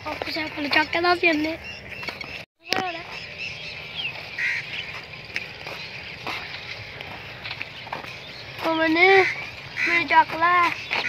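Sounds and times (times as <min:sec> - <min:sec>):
bird chirping: 0:00.0 - 0:11.0
high chatter of birdsong: 0:00.0 - 0:11.0.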